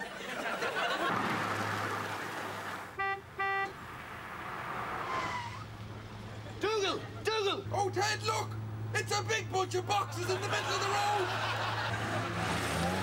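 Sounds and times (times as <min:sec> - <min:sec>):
vehicle horn beeping: 0:03.0 - 0:03.8
man speaking: 0:06.6 - 0:11.3.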